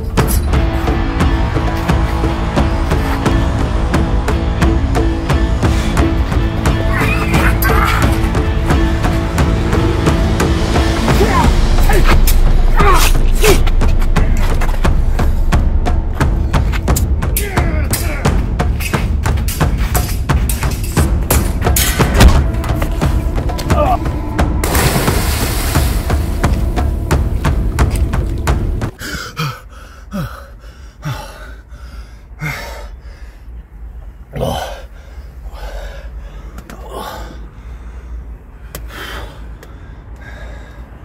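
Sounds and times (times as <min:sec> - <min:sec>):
people shouting: 0:06.9 - 0:08.4, 0:11.0 - 0:13.7.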